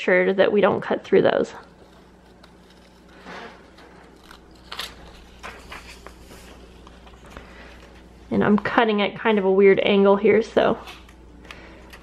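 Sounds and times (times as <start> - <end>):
scissors snipping paper: 1.6 - 6.3.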